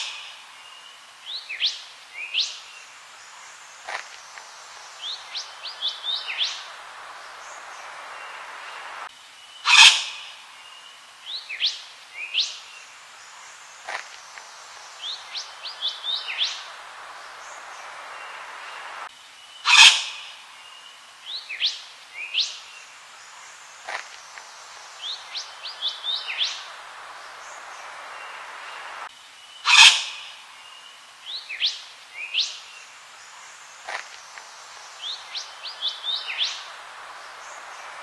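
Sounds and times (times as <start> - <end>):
background hiss: 0.0 - 38.0
bird whistled calls: 9.6 - 10.3, 19.7 - 20.3, 29.7 - 30.3
harsh bird call: 9.6 - 10.4, 19.6 - 20.4, 29.6 - 30.4.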